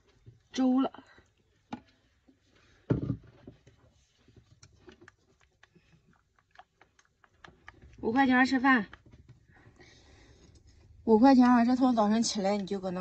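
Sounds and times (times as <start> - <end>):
thump: 2.9 - 3.3.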